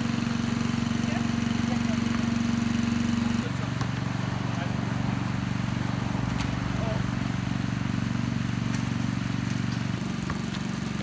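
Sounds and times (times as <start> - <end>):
engine droning steadily: 0.0 - 11.0.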